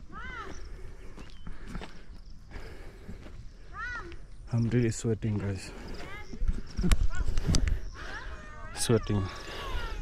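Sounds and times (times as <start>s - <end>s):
footsteps on dirt path: 0.0s - 10.0s.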